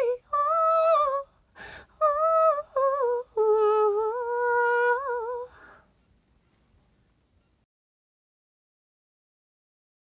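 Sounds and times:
soft breath: 0:01.2 - 0:02.0, 0:05.4 - 0:07.2
woman humming a melody: 0:02.0 - 0:05.6.

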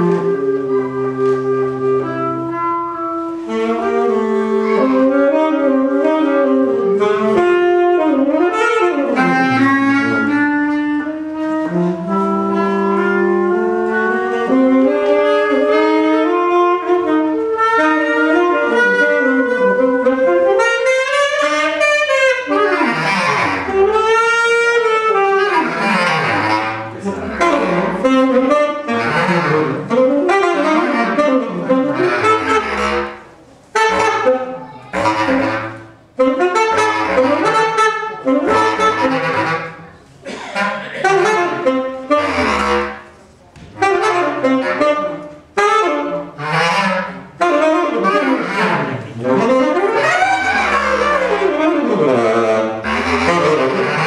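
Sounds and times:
bass clarinet playing jazz: 0:00.0 - 0:54.0
tenor saxophone playing jazz: 0:00.0 - 0:54.0.

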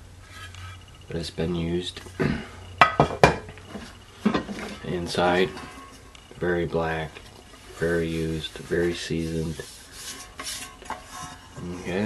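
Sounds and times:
metal pans knocking and scraping: 0:02.8 - 0:06.1, 0:07.2 - 0:12.0.

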